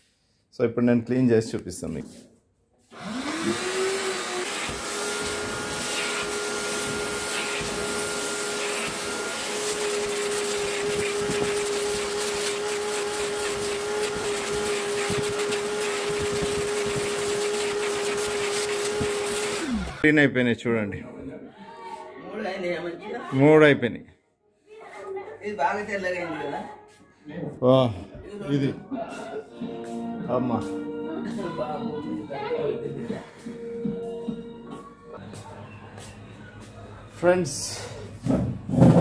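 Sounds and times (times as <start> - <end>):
vacuum cleaner running: 2.9 - 20.0.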